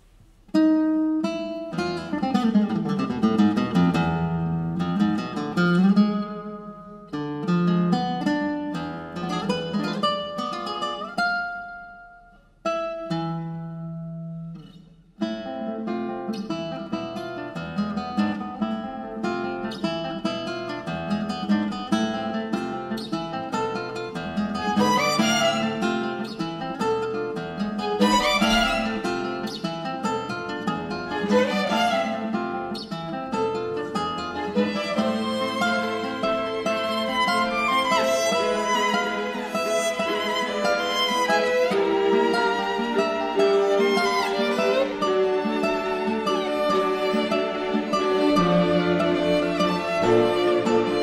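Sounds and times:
classical guitar playing: 0.0 - 51.0.

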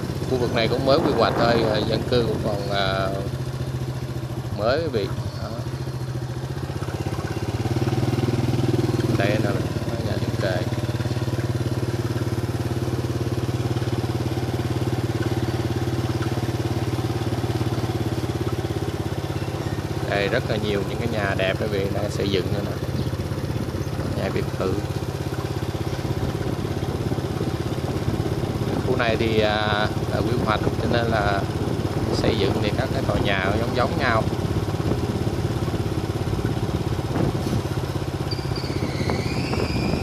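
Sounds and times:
small motorbike engine running: 0.0 - 40.0.

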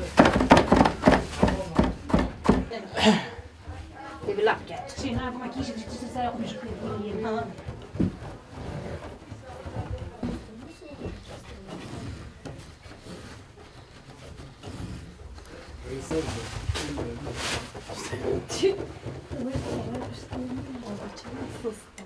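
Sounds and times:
women talking: 3.6 - 7.7, 18.4 - 22.0
yarn rustling on loom: 4.1 - 22.0.

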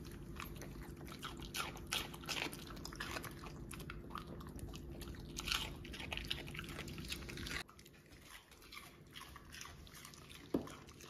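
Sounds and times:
dog crunching raw vegetable: 0.0 - 11.0.

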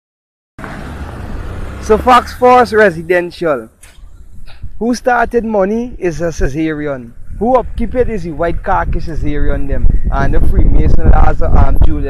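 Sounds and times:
man speaking: 1.8 - 3.7, 4.8 - 12.0.

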